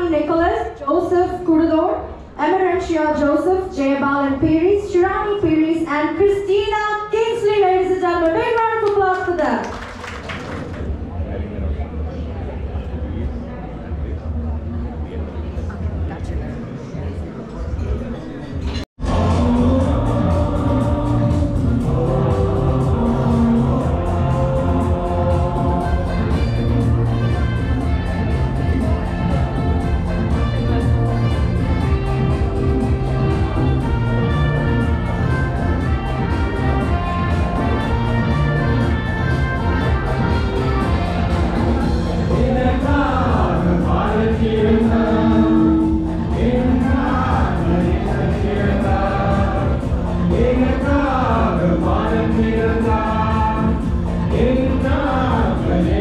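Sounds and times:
group singing into microphones: 19.0s - 28.4s, 32.2s - 56.0s
amplified backing music with bass: 19.0s - 56.0s.

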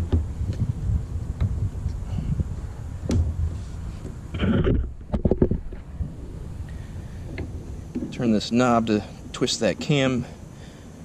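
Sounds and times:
wind rumble on microphone: 0.0s - 9.5s
wooden board knocks and scrapes: 3.1s - 5.9s.

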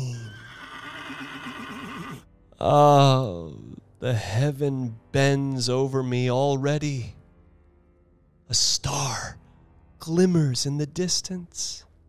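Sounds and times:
horse whinnying: 0.0s - 2.3s.

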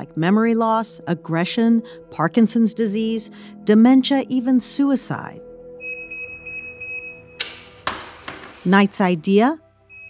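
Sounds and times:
high electronic beep tone: 5.8s - 7.4s
sharp click: 7.4s - 7.8s.

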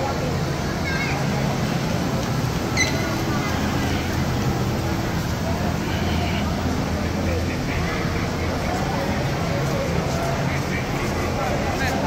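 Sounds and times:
indistinct chatter of shoppers: 0.0s - 12.0s.

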